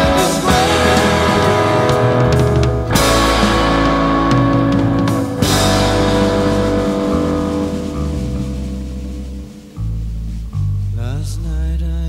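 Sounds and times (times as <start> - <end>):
cymbal crash: 0.0 - 10.3
rock band sustained chord: 0.0 - 10.4
low bass note: 0.0 - 12.0.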